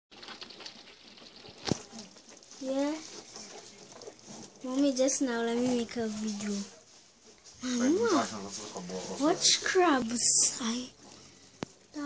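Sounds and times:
crabs scrabbling in plastic bucket: 0.1 - 12.0.

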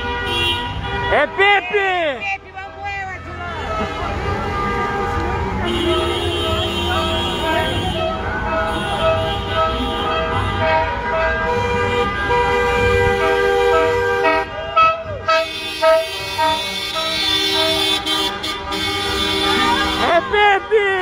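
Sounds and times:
car horns honking: 0.0 - 21.0
low rumble of slow traffic: 0.0 - 21.0.

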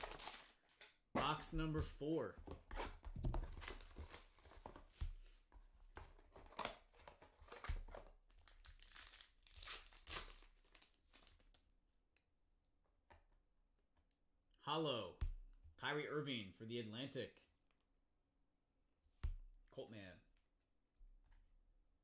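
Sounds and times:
wrapper crinkling and tearing: 0.0 - 0.6, 8.4 - 11.4.

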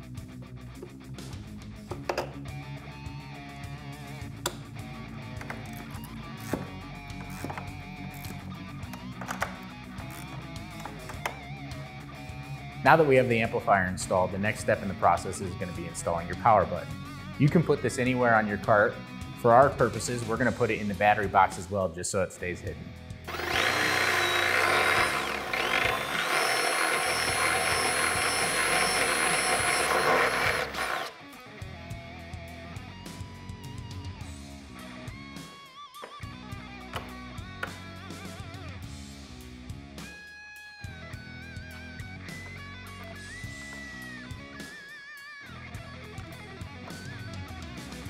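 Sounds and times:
background guitar music: 0.0 - 48.0
power drill whining: 5.3 - 11.6, 23.3 - 31.5, 42.3 - 44.8.

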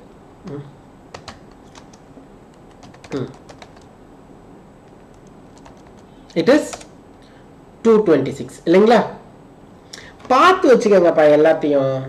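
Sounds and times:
man humming hmm: 0.4 - 0.8
keyboard key clicks: 1.1 - 3.9.

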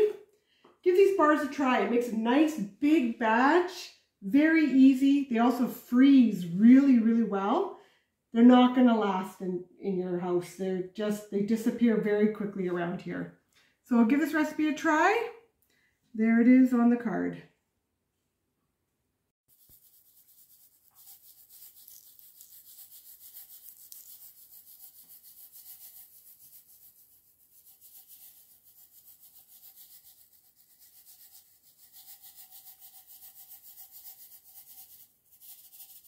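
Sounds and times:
sprinkles rattling in shaker jar: 19.5 - 36.0.

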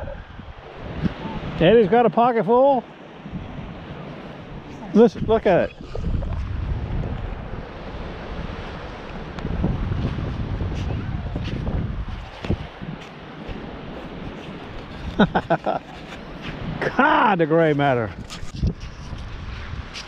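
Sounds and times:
wind noise on microphone: 0.0 - 1.8, 3.2 - 17.1, 17.9 - 20.0.

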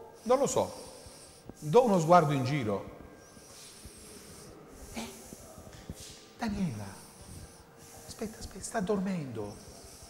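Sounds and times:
woman snoring faintly: 3.2 - 6.0.

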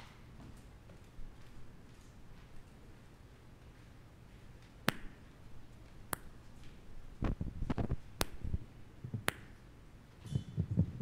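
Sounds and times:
low thumps: 10.3 - 11.0.

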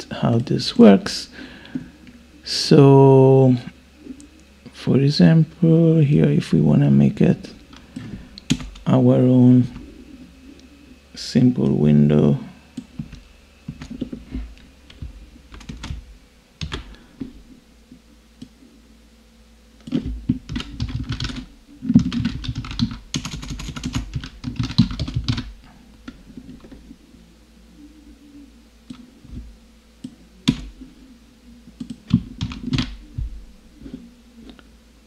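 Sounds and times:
typing on computer keyboard: 19.9 - 25.5, 31.8 - 33.0.

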